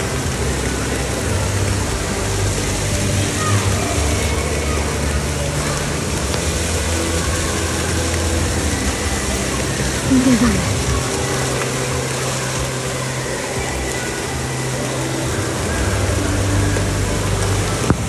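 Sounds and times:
background voices: 0.0 - 18.0
low steady hum: 0.0 - 18.0
water jets spraying and splashing: 0.0 - 18.0.

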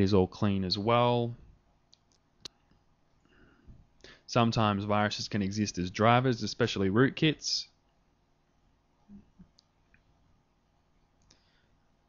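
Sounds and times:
computer mouse clicks: 1.9 - 2.8.

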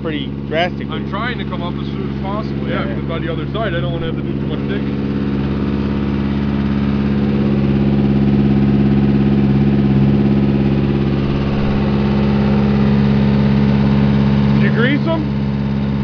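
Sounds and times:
drill rig engine running: 0.0 - 16.0.

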